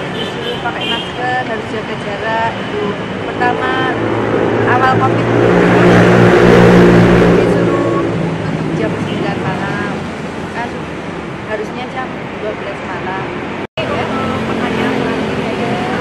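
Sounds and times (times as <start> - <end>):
vehicle passing by: 1.8 - 16.0.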